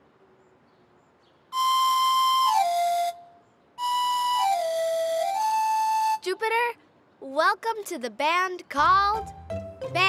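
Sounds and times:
shrill pan flute note: 1.6 - 6.2.

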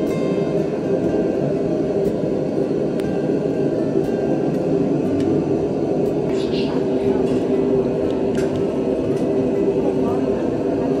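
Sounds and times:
busy kitchen rumble: 0.0 - 11.0.

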